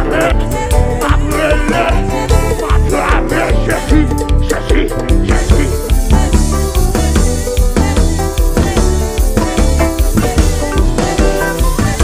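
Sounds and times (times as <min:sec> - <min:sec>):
man singing into microphone: 0:00.0 - 0:06.2
live band playing upbeat music: 0:00.0 - 0:12.0.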